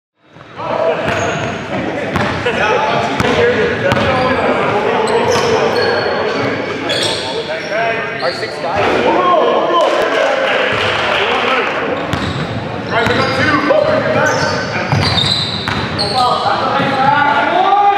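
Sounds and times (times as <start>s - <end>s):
sneakers squeaking on court: 0.3s - 2.4s, 3.1s - 8.5s, 12.0s - 17.2s
basketball bouncing: 2.1s - 2.4s, 3.2s - 4.2s, 12.1s - 13.3s, 14.9s - 16.0s.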